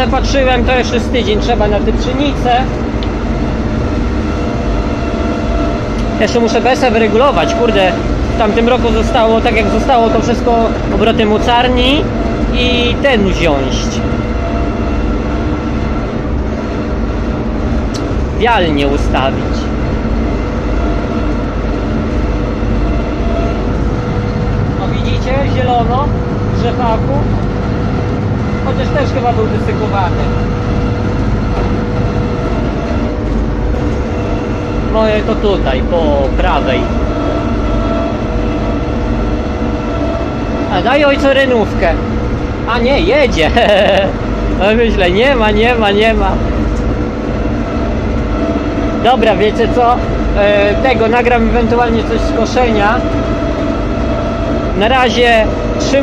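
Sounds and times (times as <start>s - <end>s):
combine harvester engine running: 0.0s - 56.0s.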